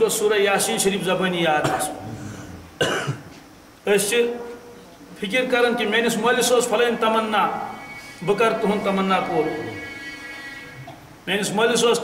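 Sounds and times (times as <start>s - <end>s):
man coughing: 1.6s - 3.3s.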